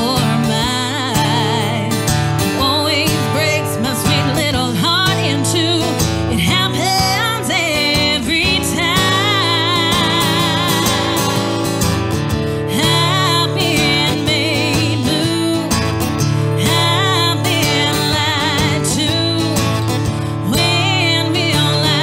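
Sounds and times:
strummed acoustic guitar: 0:00.0 - 0:22.0
woman singing country song: 0:00.0 - 0:22.0.

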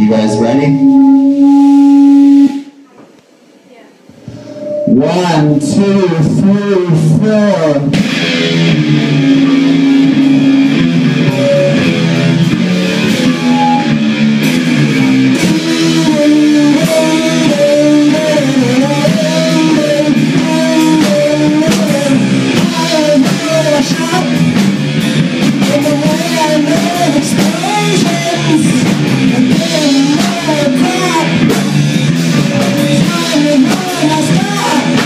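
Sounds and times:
bending lead guitar line: 0:00.0 - 0:02.7, 0:04.2 - 0:35.0
electric guitar chords: 0:00.0 - 0:02.9, 0:04.1 - 0:35.0
drums: 0:00.0 - 0:35.0.

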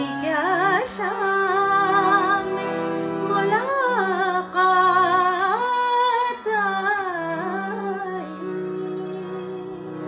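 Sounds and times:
woman singing: 0:00.0 - 0:10.0.

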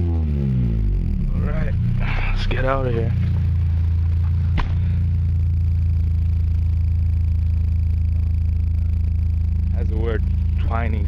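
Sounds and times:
car engine idling: 0:00.0 - 0:11.0
sharp knock: 0:04.5 - 0:04.9.

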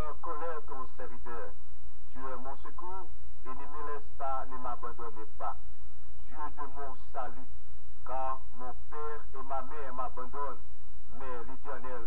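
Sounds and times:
person speaking: 0:00.0 - 0:05.6, 0:06.2 - 0:07.5, 0:08.1 - 0:12.0
steady low hum: 0:00.0 - 0:12.0.

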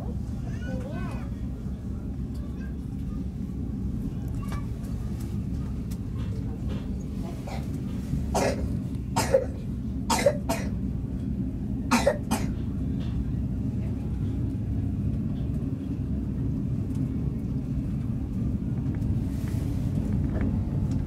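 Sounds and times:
train running rumble: 0:00.0 - 0:21.0.

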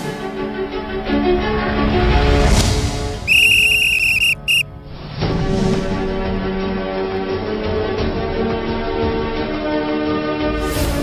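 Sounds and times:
referee's whistle blast: 0:03.3 - 0:04.6
sports theme music: 0:03.3 - 0:04.6.

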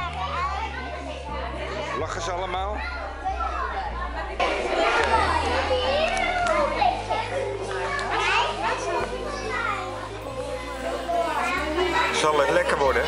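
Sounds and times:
background music: 0:00.0 - 0:13.0
children chattering and calling: 0:00.0 - 0:13.0.

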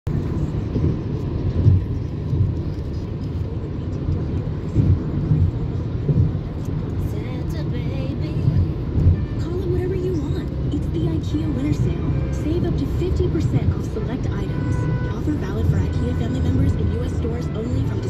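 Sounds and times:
car road and engine rumble: 0:00.1 - 0:18.0.

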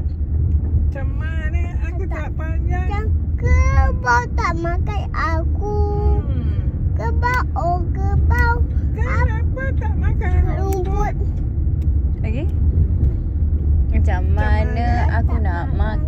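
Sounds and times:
car cabin rumble: 0:00.0 - 0:16.0
child singing and chattering: 0:02.8 - 0:06.3, 0:06.9 - 0:09.4, 0:10.3 - 0:11.3.

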